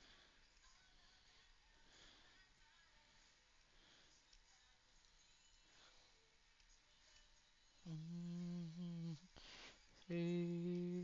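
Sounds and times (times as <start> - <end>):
person humming low note: 7.8 - 9.3, 10.1 - 11.0.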